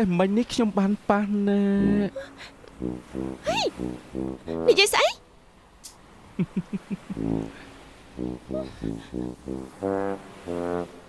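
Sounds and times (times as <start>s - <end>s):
man's voice in low pulses: 0.0s - 2.2s
background music: 1.8s - 5.0s, 7.2s - 11.0s
woman exclaiming: 3.5s - 3.7s.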